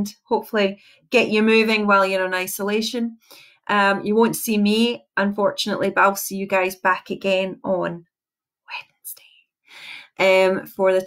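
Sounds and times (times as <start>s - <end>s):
woman whispering breathily: 8.7s - 10.2s.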